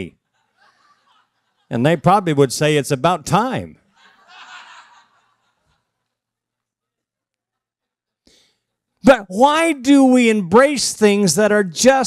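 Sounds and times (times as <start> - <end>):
audience chuckling: 3.9 - 6.2.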